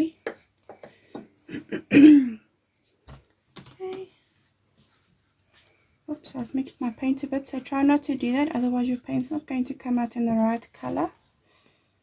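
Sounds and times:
paintbrush tapping cup: 0:00.2 - 0:01.3
person coughing: 0:01.5 - 0:02.5.

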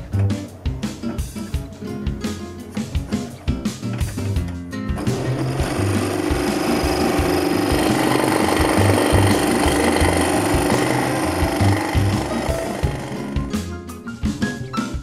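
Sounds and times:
background music: 0:00.0 - 0:15.0
scroll saw cutting wood: 0:05.0 - 0:13.5.

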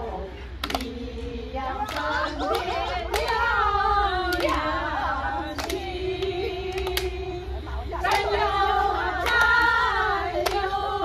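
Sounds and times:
women singing together: 0:00.0 - 0:11.0
hand claps: 0:00.6 - 0:01.0, 0:01.8 - 0:03.5, 0:04.3 - 0:04.7, 0:05.4 - 0:07.2, 0:08.0 - 0:08.4, 0:09.2 - 0:09.7, 0:10.4 - 0:10.7.

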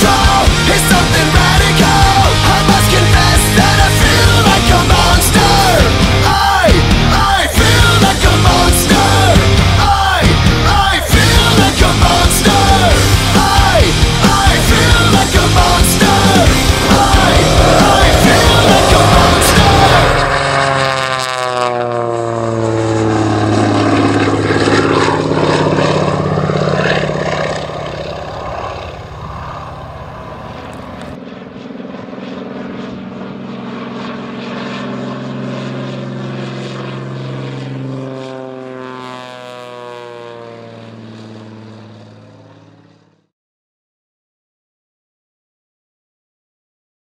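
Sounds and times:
rock music: 0:00.0 - 0:20.9
biplane engine and propeller droning: 0:00.0 - 0:43.3.

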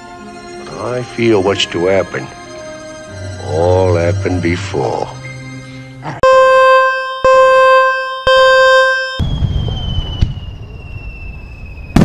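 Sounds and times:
countdown beeps: 0:06.2 - 0:09.2
falling firework whistle: 0:06.2 - 0:12.0.

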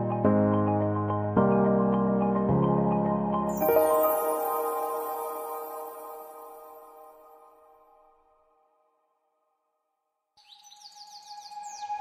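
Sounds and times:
held tone with falling chirps: 0:03.6 - 0:07.7.

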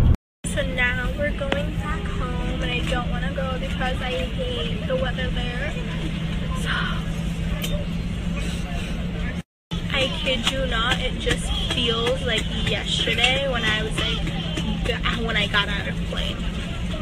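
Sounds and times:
airliner cabin drone: 0:00.0 - 0:17.0
woman talking: 0:00.5 - 0:07.2, 0:09.9 - 0:16.4.

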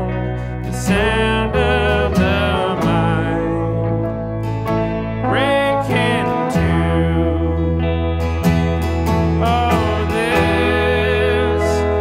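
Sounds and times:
guitars: 0:00.0 - 0:12.0
steady low bass: 0:00.0 - 0:12.0.

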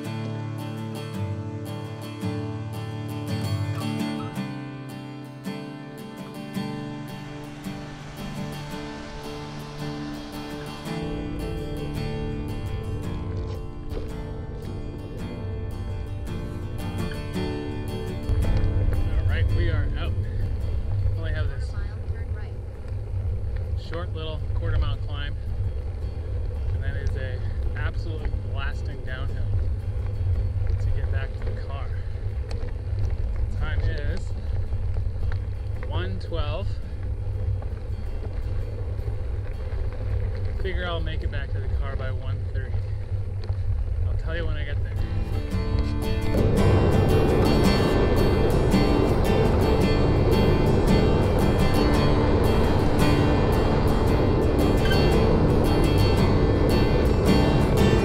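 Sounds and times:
guitar music: 0:00.0 - 0:43.6, 0:44.3 - 0:58.0
bicycle tyres rolling on gravel: 0:00.0 - 0:58.0
wind rumble on microphone: 0:05.2 - 0:58.0.

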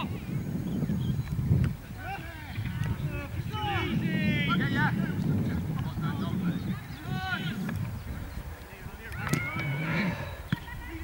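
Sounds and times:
wind rumble on microphone: 0:00.0 - 0:11.0
distant players shouting: 0:09.0 - 0:11.0.

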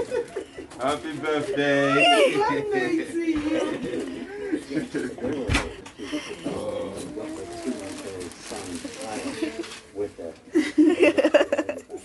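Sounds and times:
indistinct voices of people: 0:01.8 - 0:10.0.

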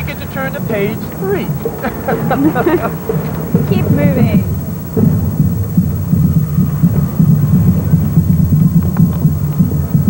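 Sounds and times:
marching band playing: 0:00.0 - 0:09.7
drums: 0:00.0 - 0:10.0.

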